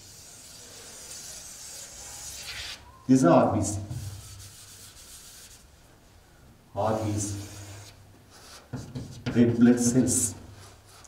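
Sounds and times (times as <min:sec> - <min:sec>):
chalk scraping on chalkboard: 0:00.0 - 0:02.8, 0:03.6 - 0:05.7, 0:06.9 - 0:11.0.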